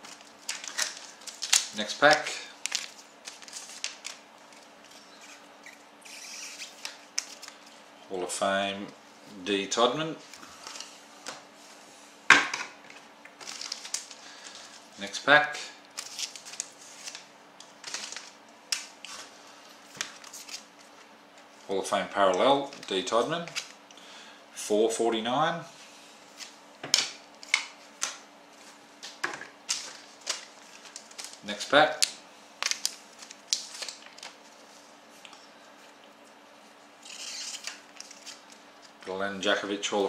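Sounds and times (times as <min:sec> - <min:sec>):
foil pack crinkling: 0:00.0 - 0:07.7, 0:13.4 - 0:14.9, 0:15.8 - 0:21.5, 0:29.0 - 0:35.4, 0:37.0 - 0:39.1.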